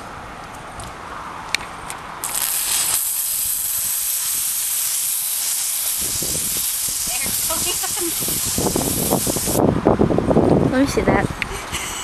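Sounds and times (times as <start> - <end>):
aerosol can spraying hiss: 2.2 - 9.6.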